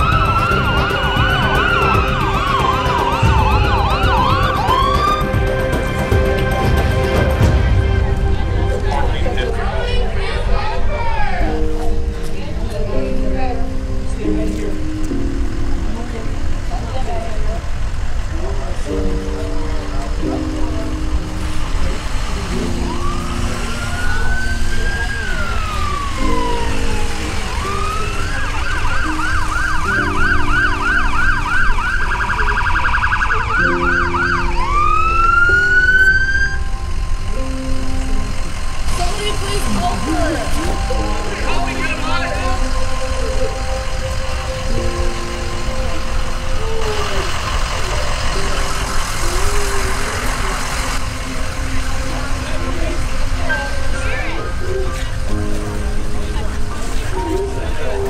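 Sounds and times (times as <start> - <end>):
low rumble: 0.0 - 10.8
emergency vehicle siren: 0.0 - 11.9, 17.8 - 58.0
low held chords: 0.0 - 32.5, 33.4 - 58.0.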